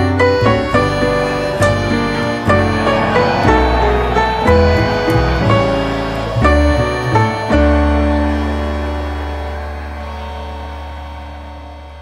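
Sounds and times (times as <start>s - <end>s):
low droning music chord: 0.0s - 12.0s.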